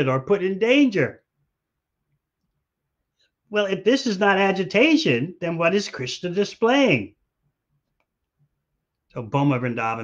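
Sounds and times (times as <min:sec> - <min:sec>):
man speaking: 0:00.0 - 0:01.3, 0:03.5 - 0:07.2, 0:09.1 - 0:10.0.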